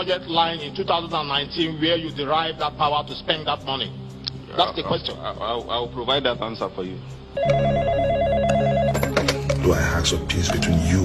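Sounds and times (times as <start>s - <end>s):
telephone ringing: 7.4s - 9.5s.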